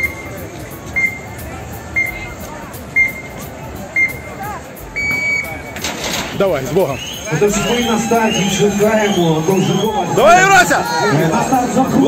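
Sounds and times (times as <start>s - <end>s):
countdown timer beeps: 0.0s - 5.8s.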